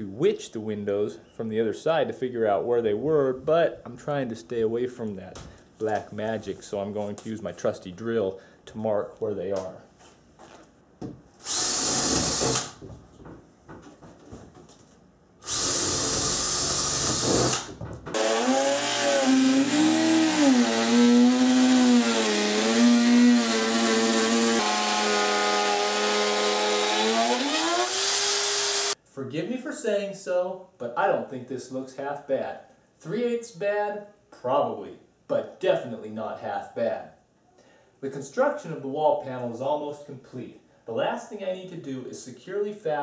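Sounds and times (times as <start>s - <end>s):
cordless drill boring through plywood: 11.4s - 12.8s, 15.4s - 29.0s
spiral saw whining through plywood: 16.6s - 29.0s.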